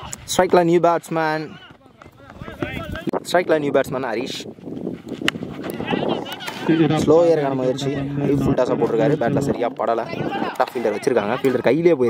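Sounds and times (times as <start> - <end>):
people shouting: 10.1 - 11.7.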